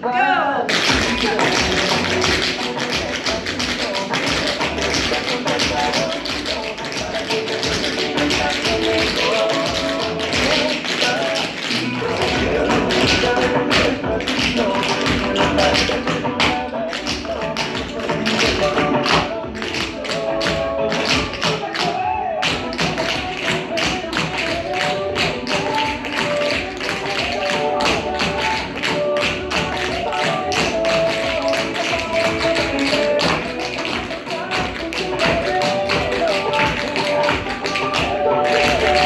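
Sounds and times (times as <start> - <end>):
recorded music: 0.0 - 39.0.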